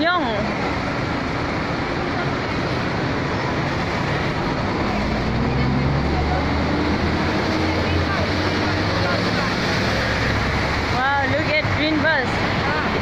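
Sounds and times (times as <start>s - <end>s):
heavy vehicle engine rumble: 0.0s - 13.0s
passing cars and buses: 0.0s - 13.0s.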